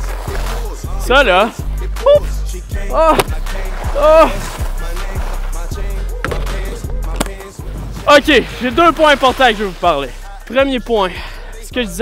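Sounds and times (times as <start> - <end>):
skis scraping on icy snow: 0.0 - 0.8, 3.5 - 10.2
music with drum beat: 0.5 - 8.4.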